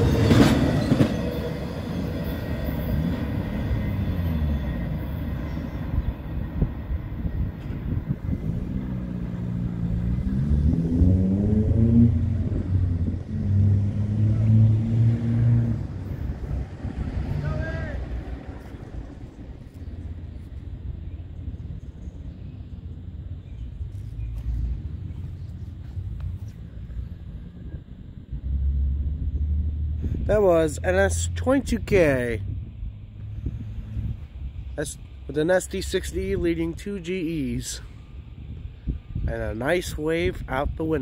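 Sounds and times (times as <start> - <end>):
diesel freight train rumbling: 0.0 - 41.0.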